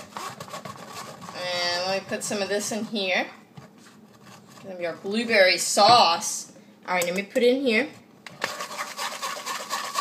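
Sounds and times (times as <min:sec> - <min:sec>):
utensil rasping against wire sieve: 0:00.0 - 0:05.3, 0:08.4 - 0:10.0.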